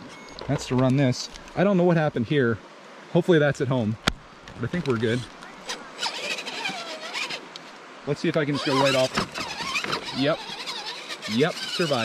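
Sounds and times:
electric motor whining: 0:05.6 - 0:07.4, 0:08.5 - 0:12.0.

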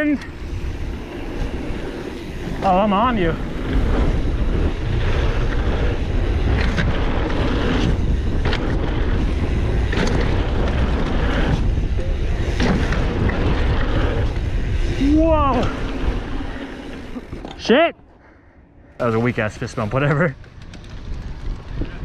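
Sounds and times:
tyres on packed dirt: 0:00.0 - 0:22.0
wind buffeting microphone: 0:00.3 - 0:17.3, 0:19.3 - 0:22.0.

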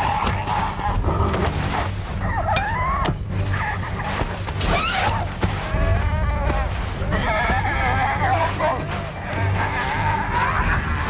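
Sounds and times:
film score: 0:00.0 - 0:11.0
hyena crying: 0:05.7 - 0:11.0.

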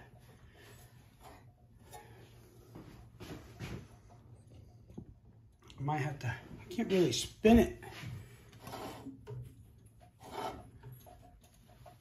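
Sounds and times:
low steady hum: 0:00.0 - 0:12.0
hand scraping engine flywheel: 0:07.8 - 0:12.0.

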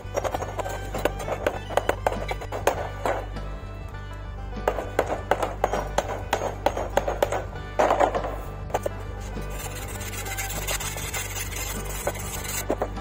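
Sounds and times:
background music: 0:00.0 - 0:13.0
hammer striking steel: 0:04.6 - 0:12.9.

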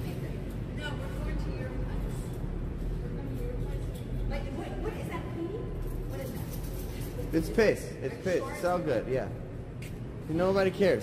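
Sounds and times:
faint indistinct voices: 0:00.0 - 0:09.0.

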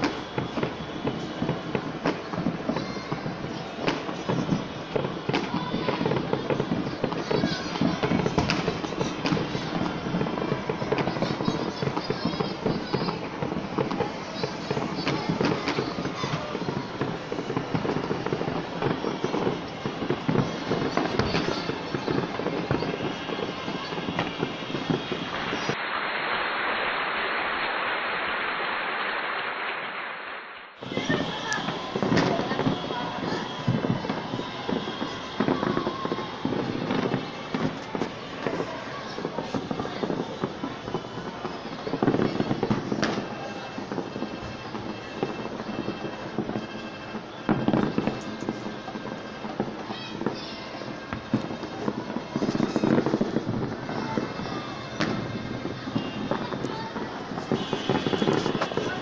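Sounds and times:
continuous din: 0:00.0 - 0:25.8, 0:30.8 - 0:59.0
fireworks bangs and crackles: 0:00.0 - 0:59.0
steady muffled hiss: 0:25.7 - 0:30.7.

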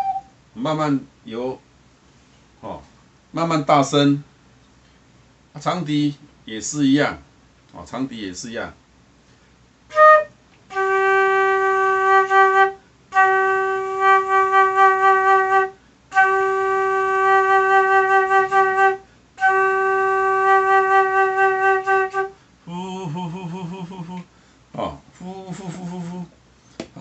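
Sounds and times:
flute long held notes: 0:00.0 - 0:00.3, 0:09.9 - 0:24.2.

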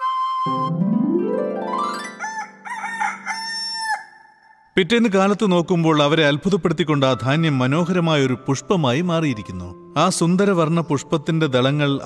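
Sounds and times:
held musical chord: 0:00.5 - 0:02.6
rooster crowing: 0:02.0 - 0:04.7.

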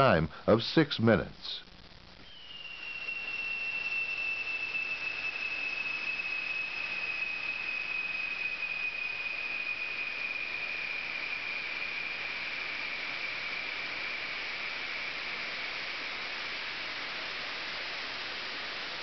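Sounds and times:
gas rushing with high whistle: 0:01.5 - 0:19.0.

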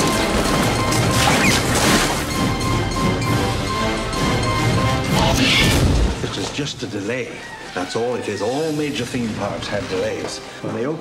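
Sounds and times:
crashing and smashing: 0:00.0 - 0:02.4
music: 0:00.0 - 0:11.0.

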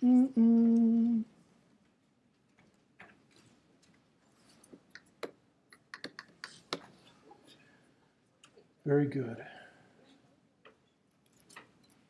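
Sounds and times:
sharp clicks and taps: 0:04.7 - 0:06.9.

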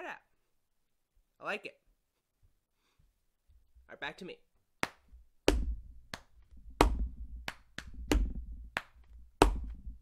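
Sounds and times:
hand patting chest: 0:04.8 - 0:10.0
hand tapping wooden tabletop: 0:06.7 - 0:09.9.

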